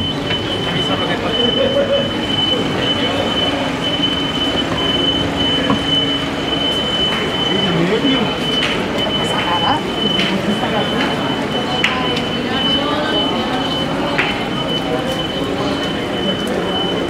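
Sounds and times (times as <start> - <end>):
indistinct voices: 0.0 - 17.0
town noise: 0.0 - 17.0.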